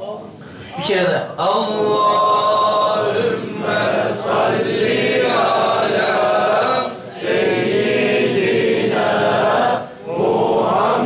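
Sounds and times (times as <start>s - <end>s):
men chanting in unison: 1.4s - 11.0s.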